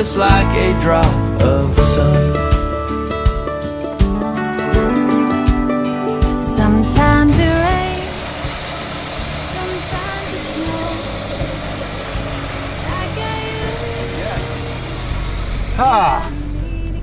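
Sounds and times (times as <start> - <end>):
car engine idling: 6.7 - 17.0.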